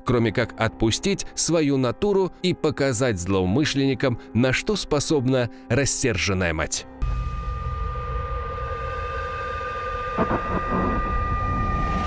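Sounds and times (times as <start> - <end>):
steady high ringing tone: 7.0 - 12.0
low rumble: 9.9 - 12.0
sudden sharp hit: 10.0 - 12.0.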